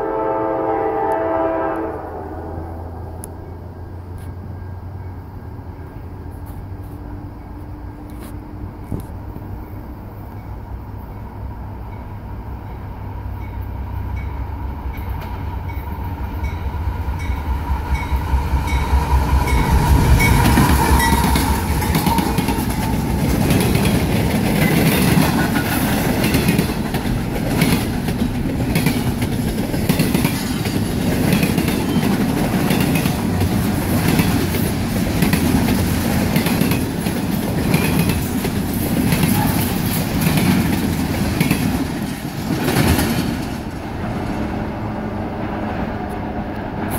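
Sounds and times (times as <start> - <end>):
diesel locomotive passing: 0.0 - 46.9
train wheels clacking over rail joints: 17.2 - 44.7.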